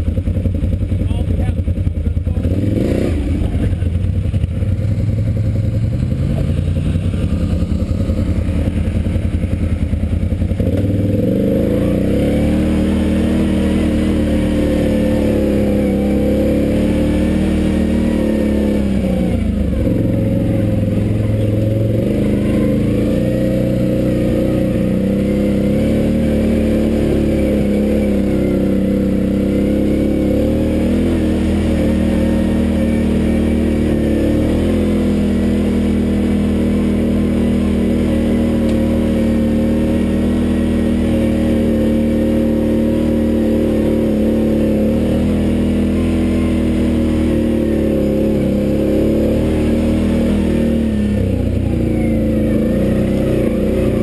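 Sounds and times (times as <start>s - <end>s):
off-road vehicle engine revving: 0.0s - 54.0s.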